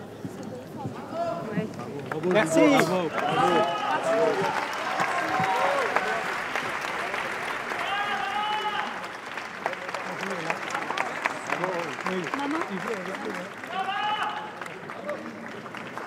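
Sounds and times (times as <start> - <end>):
audience applauding: 2.0 - 16.0.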